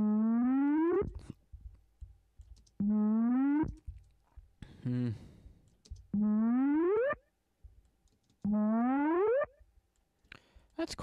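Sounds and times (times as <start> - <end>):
buzzy rising synth tone: 2.8 - 3.8.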